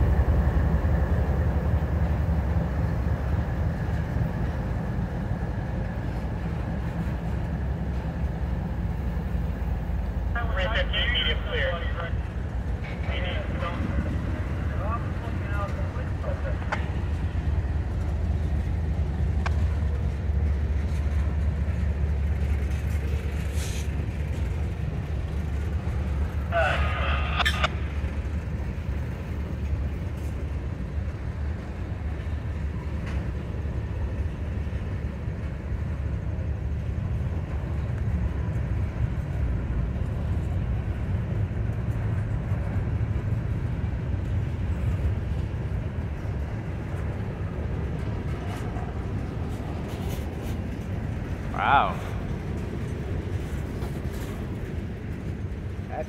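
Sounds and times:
freight cars rumbling on rails: 0.0s - 56.0s.

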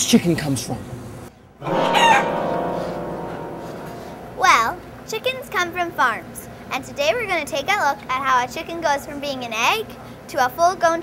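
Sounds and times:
rooster crowing: 1.7s - 2.4s.

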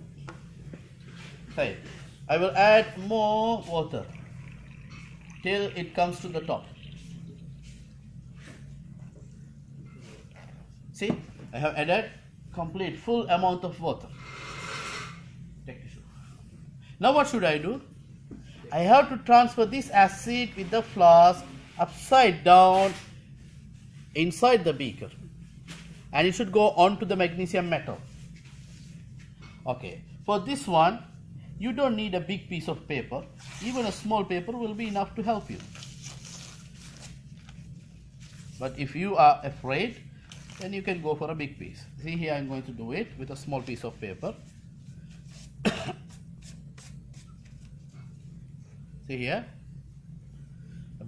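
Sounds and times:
low room hum: 0.0s - 51.0s
paper rustling: 35.5s - 37.6s.

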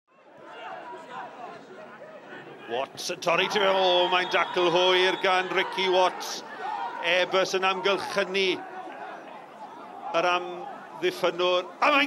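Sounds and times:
chatter of spectators: 0.1s - 12.0s.

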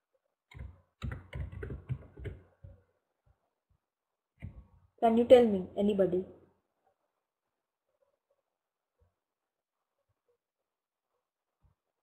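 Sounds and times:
computer keyboard typing: 0.5s - 2.5s.

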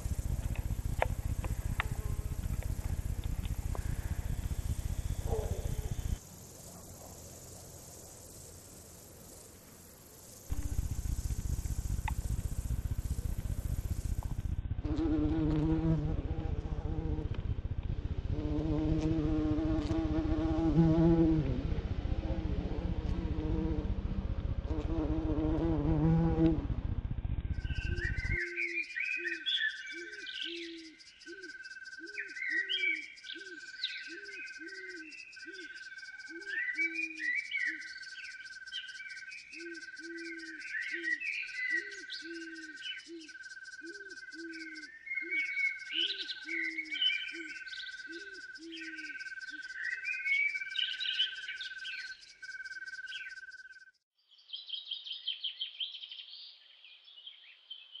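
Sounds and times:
bird chirps: 0.0s - 6.2s, 27.4s - 58.0s
fast high pulsing: 0.0s - 6.2s, 10.4s - 28.4s
low croaking call: 0.0s - 6.2s, 10.5s - 53.8s
insects chirping: 0.0s - 54.0s
fuller sound with wavering tones: 10.5s - 15.2s.

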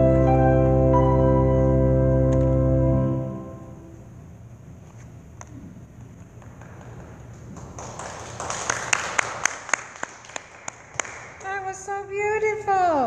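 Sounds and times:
sharp handclaps: 6.3s - 11.6s
woman speaking: 11.4s - 13.0s.

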